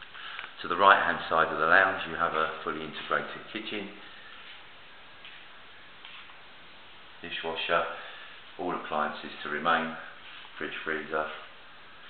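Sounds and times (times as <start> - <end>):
room hiss: 0.0 - 12.0.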